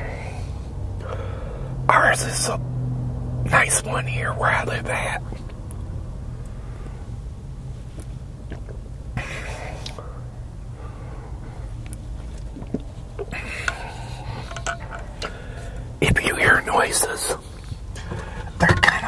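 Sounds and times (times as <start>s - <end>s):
low hum inside car: 0.0s - 19.0s
slurping and swallowing: 11.9s - 15.4s.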